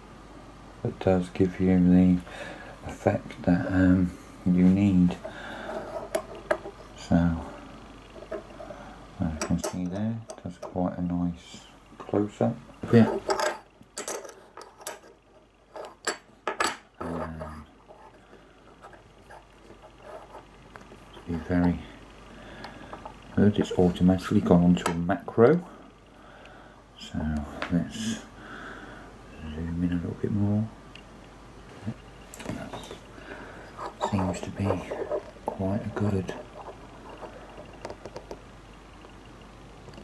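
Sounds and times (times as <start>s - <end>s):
coins clinking on wooden table: 13.2s - 15.1s, 15.7s - 16.8s
handling noises near microphone: 33.7s - 38.4s.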